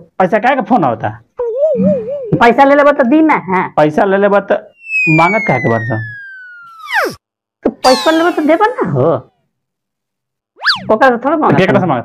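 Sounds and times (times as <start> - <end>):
voice trailing off: 4.9 - 7.2, 7.8 - 9.3
cartoon boing sound effect: 7.8 - 9.2.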